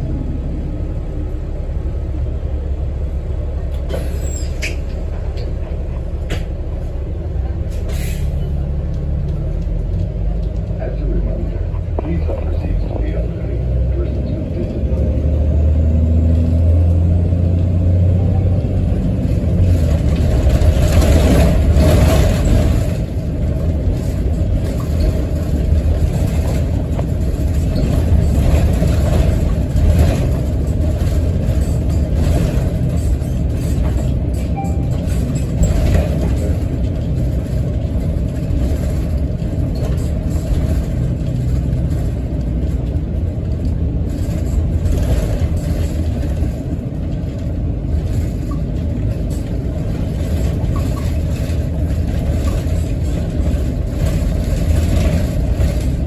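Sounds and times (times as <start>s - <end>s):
bus engine and road rumble: 0.0s - 56.0s.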